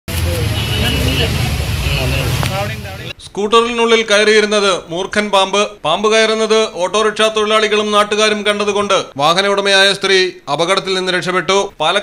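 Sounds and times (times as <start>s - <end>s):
low traffic rumble: 0.1s - 3.2s
people talking: 0.1s - 12.0s.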